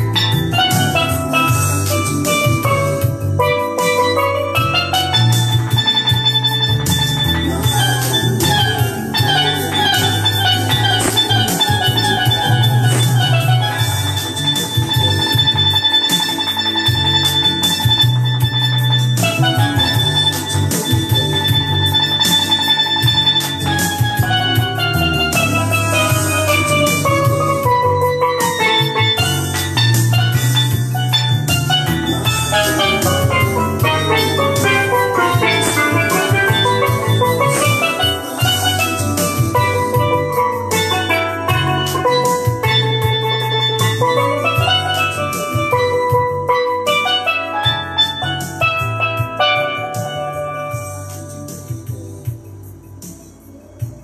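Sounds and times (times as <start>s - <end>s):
steel pan runs: 0.0s - 50.8s
backing track with bass and drums: 0.0s - 54.0s.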